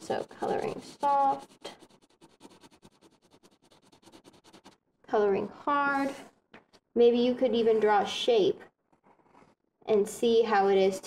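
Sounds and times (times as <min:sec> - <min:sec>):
colored pencil shading on paper: 0:00.0 - 0:04.8.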